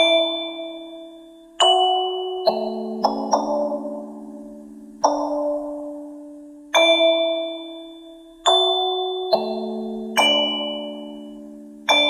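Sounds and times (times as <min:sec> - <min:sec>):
bell-like lullaby notes: 0:00.0 - 0:12.0.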